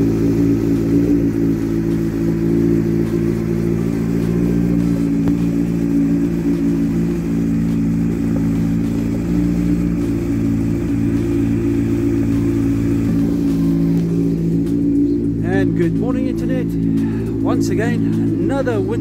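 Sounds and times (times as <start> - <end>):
motorcycle engine idling: 0.0 - 19.0.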